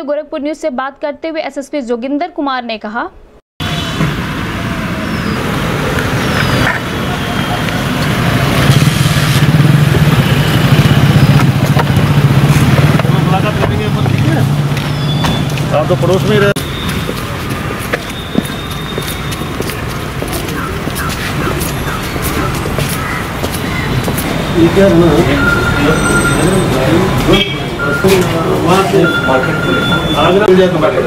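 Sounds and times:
vehicle engine running: 3.6 - 27.4.

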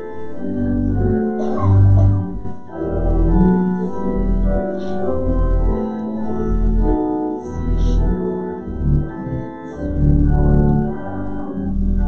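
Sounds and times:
organ playing a hymn: 0.0 - 12.0.

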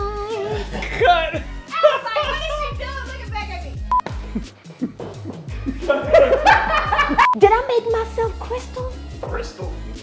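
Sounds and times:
music with deep bass beat: 2.4 - 7.5
woman laughing loudly: 5.6 - 7.4.

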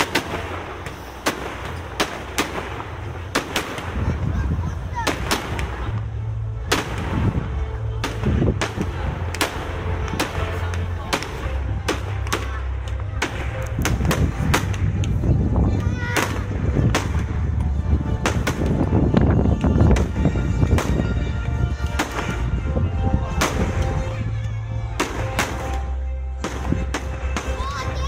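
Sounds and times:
fireworks bangs: 0.0 - 24.2, 24.9 - 28.0
steady low rumble: 0.0 - 28.0.

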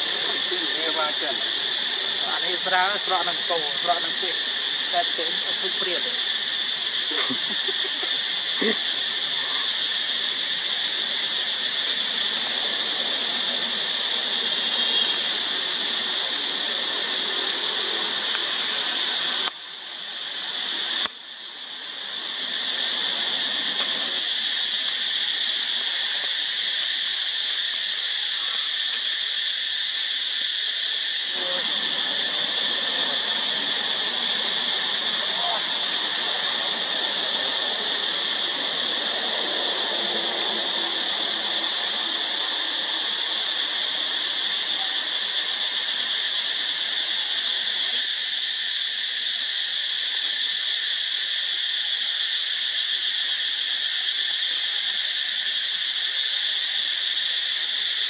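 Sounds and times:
shrill insect chorus: 0.0 - 58.0.

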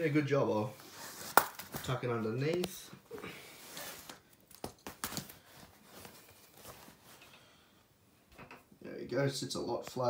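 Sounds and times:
rustling on a blanket: 5.4 - 7.3.

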